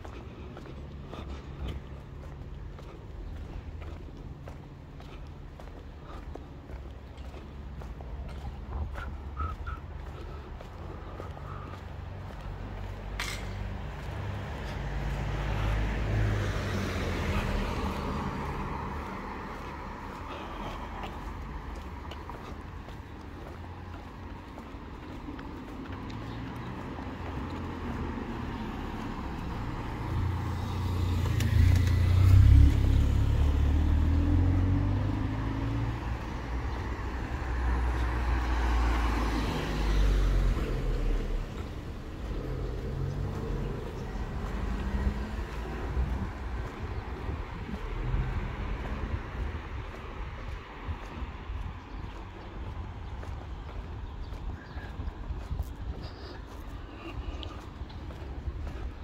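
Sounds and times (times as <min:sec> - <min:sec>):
vehicles passing: 0:00.0 - 0:59.0.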